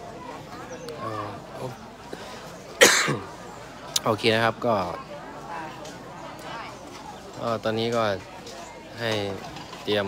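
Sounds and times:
person coughing: 2.8s - 3.2s.

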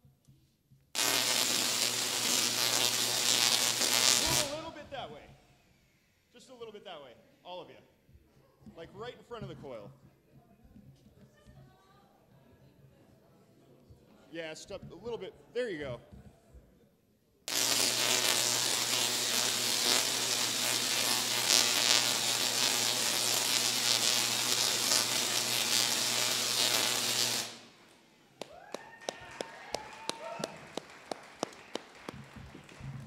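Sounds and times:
tesla coil buzzing: 1.0s - 4.8s, 17.5s - 27.8s.

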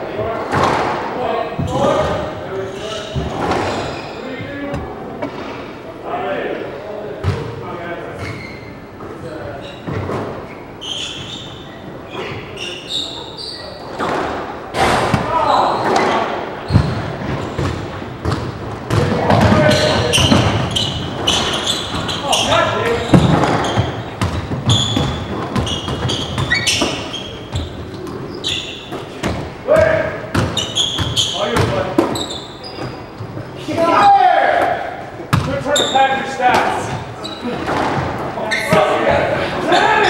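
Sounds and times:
squash ball striking racquets and walls: 0.4s - 2.4s, 3.0s - 5.8s, 7.2s - 8.4s, 13.8s - 33.4s, 34.5s - 40.0s
shoes squeaking on wooden floor: 1.5s - 5.6s, 8.2s - 33.7s, 35.3s - 40.0s.

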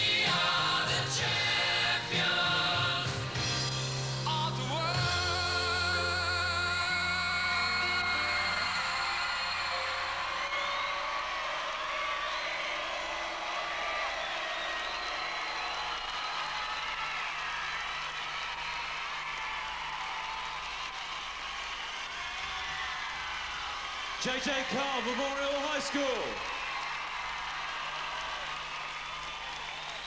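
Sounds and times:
audience cheering and applauding: 4.7s - 30.0s
high screams and whoops: 7.4s - 24.4s, 26.4s - 30.0s.

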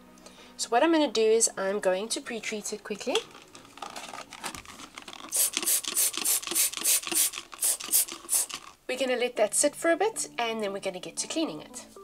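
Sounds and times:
trigger spray bottle spraying: 5.2s - 8.8s.

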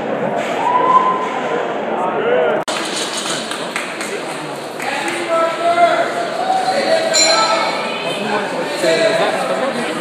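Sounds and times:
people talking indistinctly: 4.0s - 10.0s.

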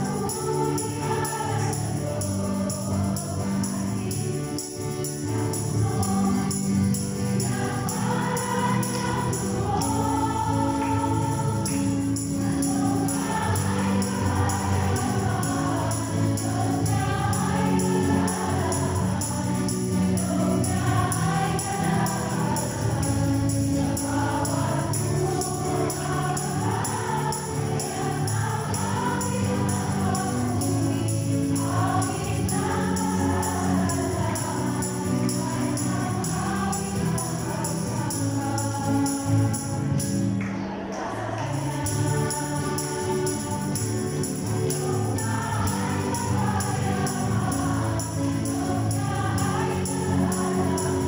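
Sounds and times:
church choir singing a hymn: 0.0s - 51.0s.

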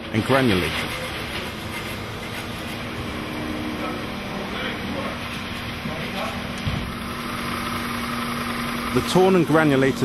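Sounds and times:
machine humming steadily: 0.0s - 10.0s.

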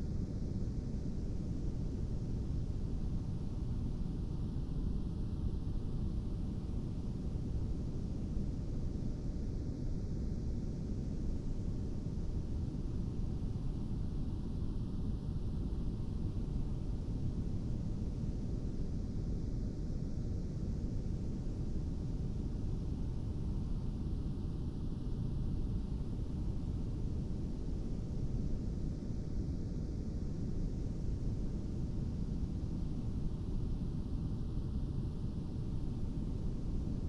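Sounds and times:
low rush of filtered noise: 0.0s - 37.0s.

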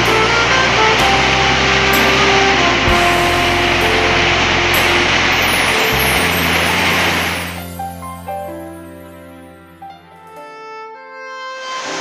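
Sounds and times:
heavy rain: 0.0s - 8.2s
music of sustained notes: 0.0s - 12.0s.

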